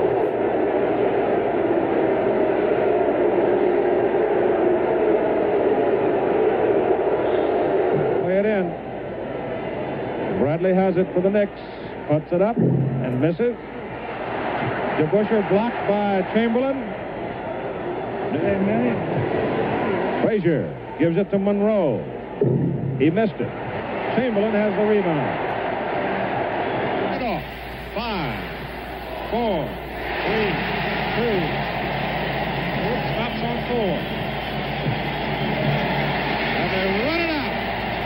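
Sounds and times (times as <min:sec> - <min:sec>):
arena crowd noise: 0:00.0 - 0:38.0
low broadcast hum: 0:07.0 - 0:38.0.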